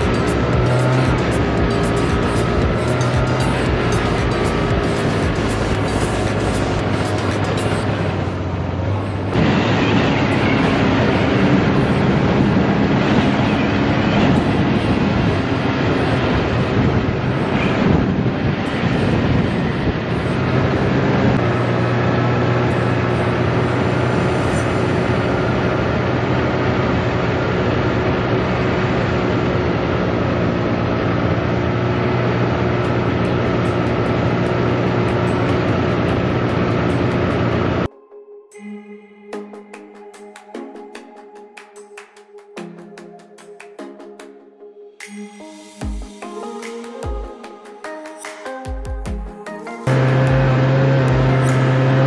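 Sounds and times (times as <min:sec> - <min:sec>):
dense rush of noise: 0:00.0 - 0:37.9
snowmobile engine running: 0:00.0 - 0:37.9, 0:49.9 - 0:52.0.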